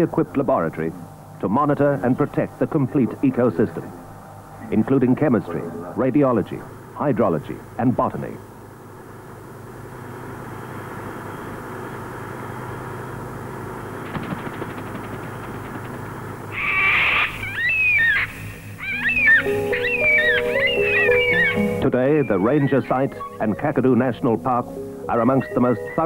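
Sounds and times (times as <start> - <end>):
steady background hiss: 0.0 - 26.0
bird calls sliding in pitch: 16.5 - 23.4
held music notes: 19.0 - 26.0.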